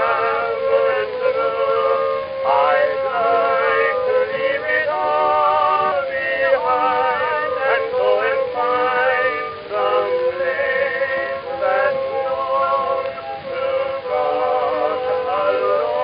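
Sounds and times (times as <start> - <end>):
men singing ballad in harmony: 0.0 - 16.0.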